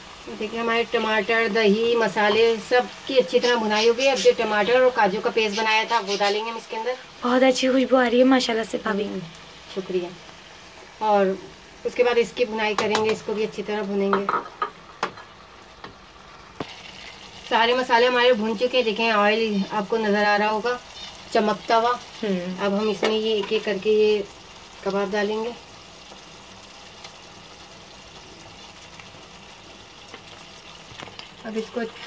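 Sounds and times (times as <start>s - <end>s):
sauce sizzling in oil: 0.0s - 32.0s.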